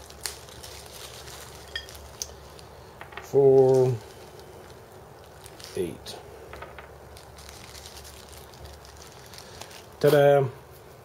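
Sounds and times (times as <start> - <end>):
plastic bag rustling: 0.0 - 10.5
low steady hum: 0.0 - 11.0.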